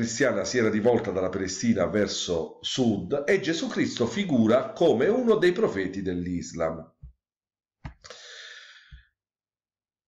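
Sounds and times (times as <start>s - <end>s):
person breathing: 8.0s - 9.2s.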